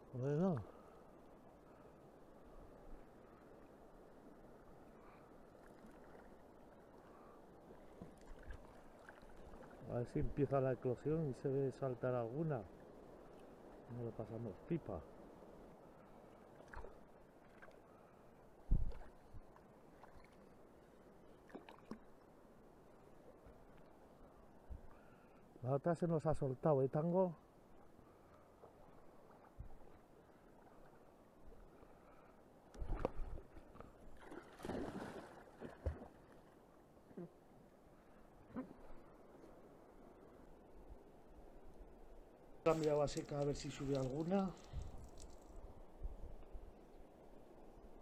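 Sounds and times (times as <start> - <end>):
river water: 0.0 - 48.0.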